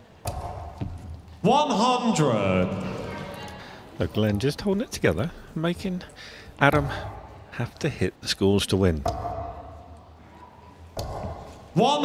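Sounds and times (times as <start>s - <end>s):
murmur of large hall: 0.0s - 12.0s.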